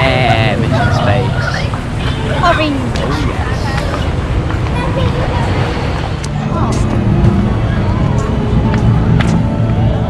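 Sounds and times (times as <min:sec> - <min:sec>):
people chattering outdoors: 0:00.0 - 0:10.0
steady low rumble: 0:00.0 - 0:10.0.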